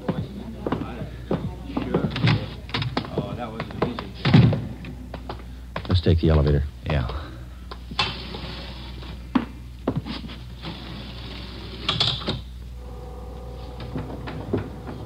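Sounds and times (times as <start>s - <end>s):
elevator hum: 0.0s - 15.0s.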